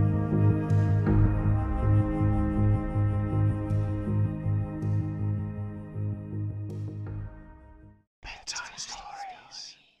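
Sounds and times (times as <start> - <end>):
person whispering: 8.2 - 10.0.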